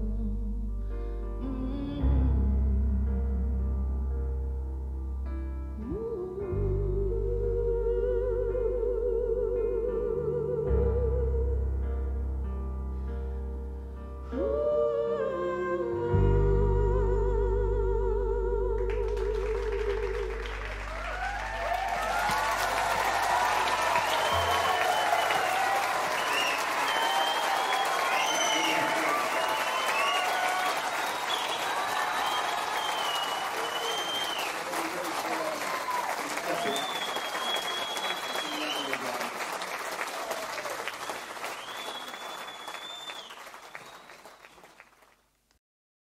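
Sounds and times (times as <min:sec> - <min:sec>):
audience applauding and cheering: 0:19.1 - 0:45.2.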